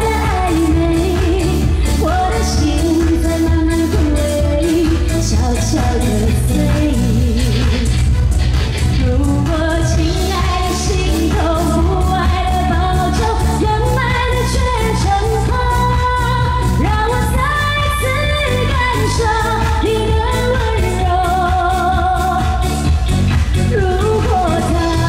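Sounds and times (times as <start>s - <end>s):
woman singing pop ballad: 0.0s - 8.1s, 8.8s - 25.0s
instrumental accompaniment with low beat: 0.0s - 25.0s.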